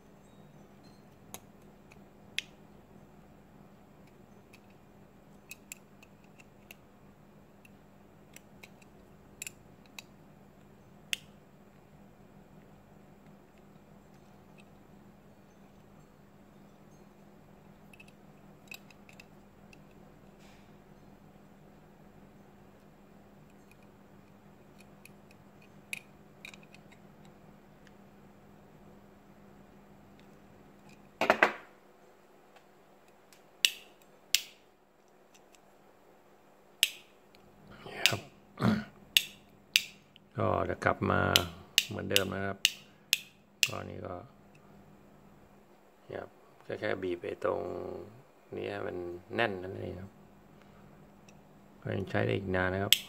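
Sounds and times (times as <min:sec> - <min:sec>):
pliers clicking on light switch: 0:33.6 - 0:34.6, 0:36.8 - 0:37.1, 0:39.2 - 0:40.0
sharp switch clicks: 0:33.6 - 0:34.6, 0:36.8 - 0:37.1, 0:39.2 - 0:40.0, 0:41.3 - 0:43.8.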